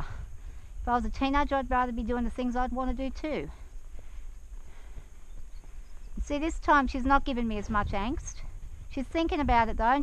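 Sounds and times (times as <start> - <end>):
horse hoofbeats on dirt: 0.8 - 10.0.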